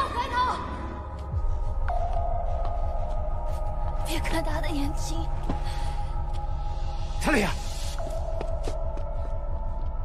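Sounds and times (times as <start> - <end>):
low pulsing throb: 0.0 - 10.0.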